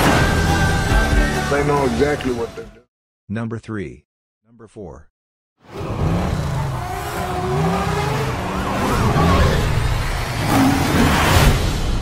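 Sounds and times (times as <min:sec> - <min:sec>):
film soundtrack mix: 0:00.0 - 0:02.9
car engine revving: 0:05.6 - 0:12.0.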